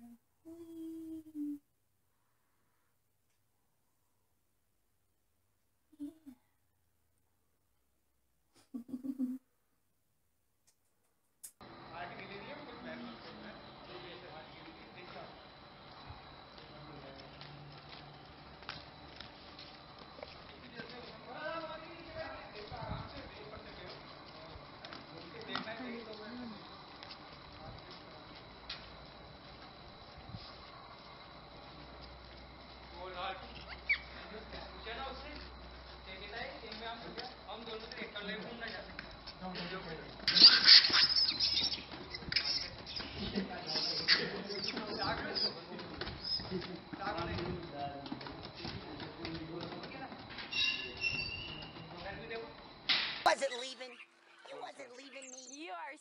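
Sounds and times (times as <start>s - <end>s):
distant indistinct voices: 11.7s - 29.7s, 31.0s - 52.7s
short high chirping calls: 33.5s - 34.2s, 40.3s - 45.6s, 53.3s - 56.0s.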